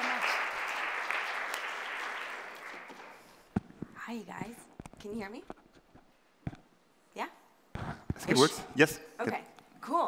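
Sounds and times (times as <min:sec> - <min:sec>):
audience applause: 0:00.0 - 0:03.4.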